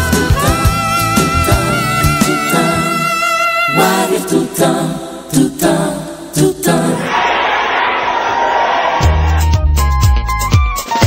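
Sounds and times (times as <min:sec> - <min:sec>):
choir singing gospel music: 0:00.0 - 0:09.1.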